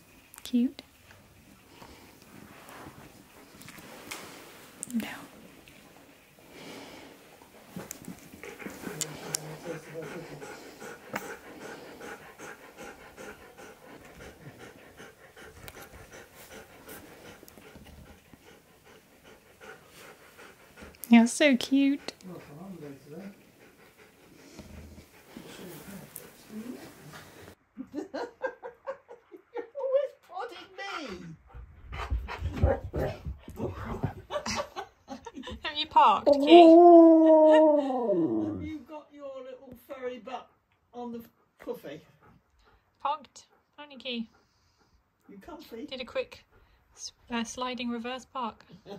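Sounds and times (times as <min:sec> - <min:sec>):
dog breathing: 0:01.2 - 0:27.6, 0:40.4 - 0:47.4
dog howling call: 0:36.3 - 0:38.7.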